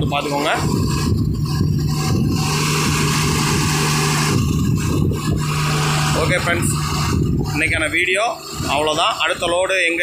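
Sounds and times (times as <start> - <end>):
truck engine humming: 0.0 - 10.0.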